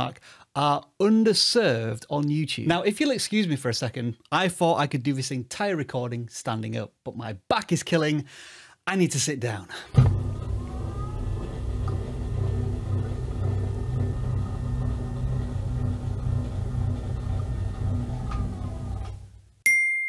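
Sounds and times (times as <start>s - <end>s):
low rumble with held tones: 10.0s - 19.4s
bright ding: 19.6s - 20.0s.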